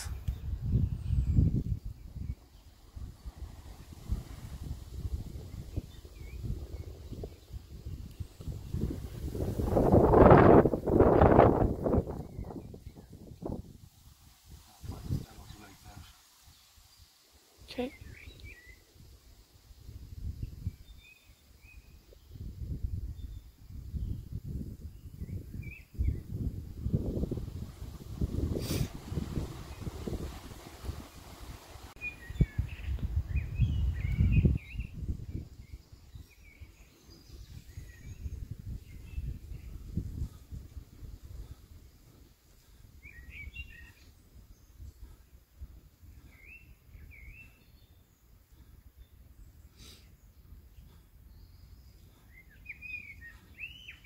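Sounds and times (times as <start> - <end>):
wind rumbling on microphone: 0.0 - 16.2, 17.6 - 49.8
small birds chirping: 14.6 - 19.2, 19.8 - 54.0.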